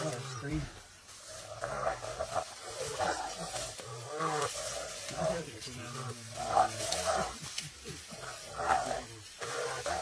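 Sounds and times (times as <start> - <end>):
hyenas calling: 0.0 - 10.0.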